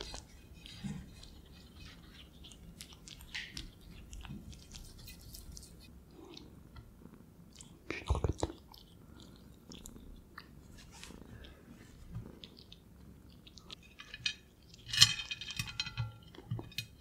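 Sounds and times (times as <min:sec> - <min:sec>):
ferret chewing food: 0:00.0 - 0:14.9.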